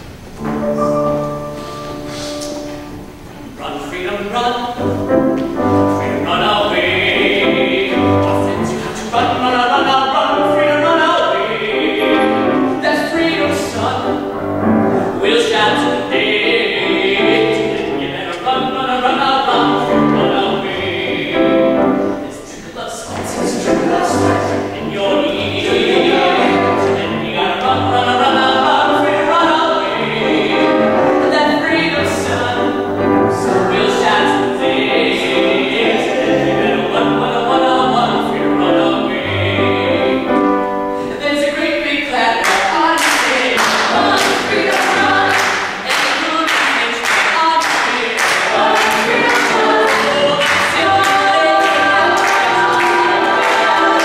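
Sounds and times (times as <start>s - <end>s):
grand piano: 0.0s - 54.0s
vocal ensemble singing: 0.4s - 54.0s
singers clapping hands: 42.4s - 54.0s.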